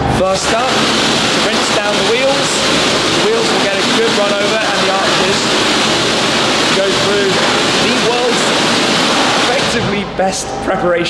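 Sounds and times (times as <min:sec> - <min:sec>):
pressure washer spraying water: 0:00.1 - 0:10.0.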